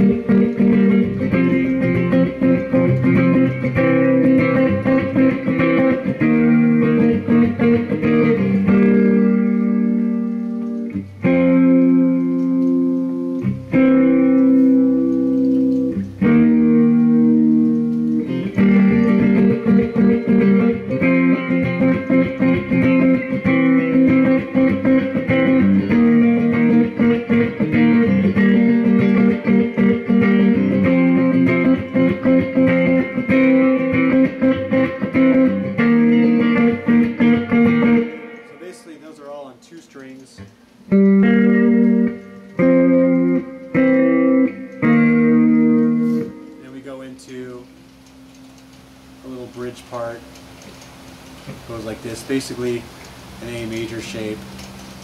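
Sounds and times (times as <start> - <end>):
electric guitar playing: 0.0 - 55.0.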